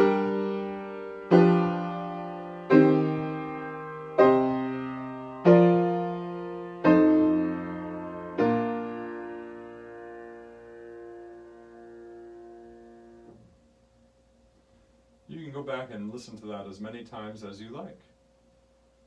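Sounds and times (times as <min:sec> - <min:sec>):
piano chords: 0:00.0 - 0:13.5.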